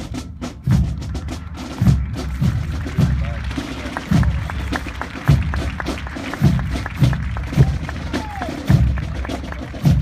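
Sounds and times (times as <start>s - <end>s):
heavy bass drum beats: 0.0s - 10.0s
march music with drums: 0.0s - 10.0s.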